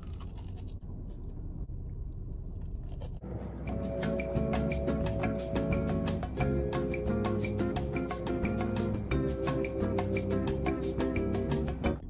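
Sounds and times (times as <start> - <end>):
chewing crispy fried chicken: 0.0 - 0.8
background music: 3.2 - 12.0.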